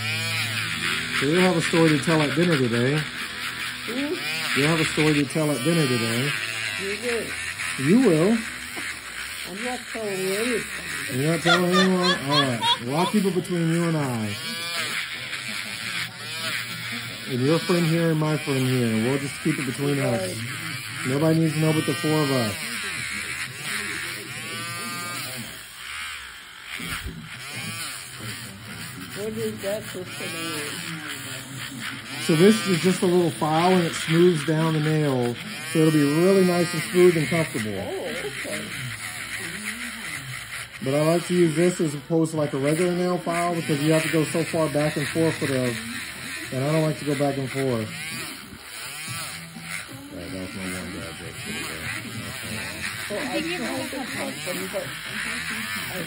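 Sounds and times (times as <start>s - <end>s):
nail drill grinding toenail: 0.0s - 56.0s.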